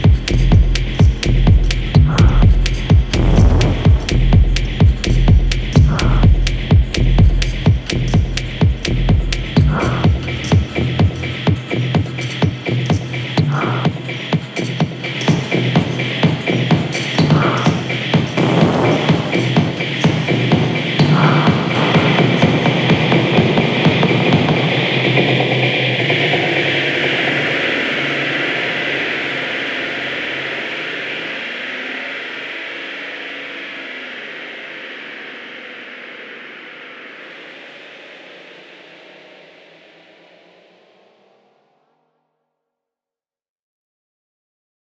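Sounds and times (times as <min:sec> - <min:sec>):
driving kick drum beat: 0:00.0 - 0:25.6
hissing synth wash: 0:03.1 - 0:04.8.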